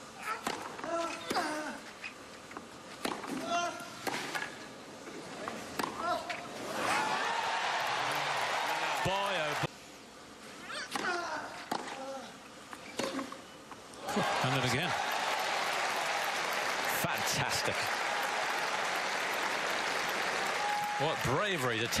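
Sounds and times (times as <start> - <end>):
racket hitting tennis ball: 3.0 - 4.5
crowd cheering: 6.6 - 9.7, 14.0 - 22.0.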